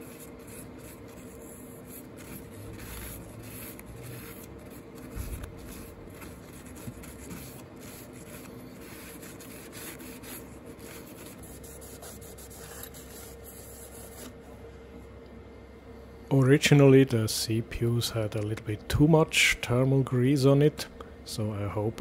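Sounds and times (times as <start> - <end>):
tissue wiping: 0.0 - 14.4
faint steady hum: 0.0 - 22.0.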